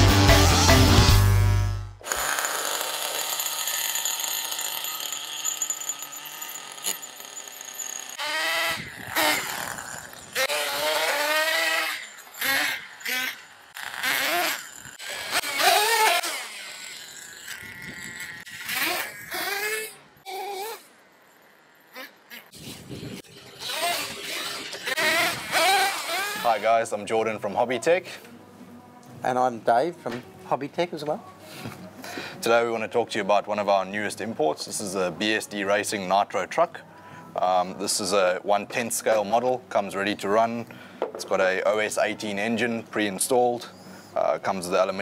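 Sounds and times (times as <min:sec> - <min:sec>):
intro music: 0:00.0 - 0:02.0
nitro engine revving: 0:08.2 - 0:16.4, 0:23.6 - 0:26.4.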